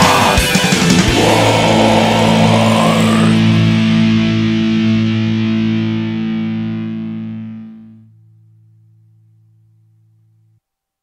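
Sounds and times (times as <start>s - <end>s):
distorted electric guitar chord: 0.0s - 10.6s.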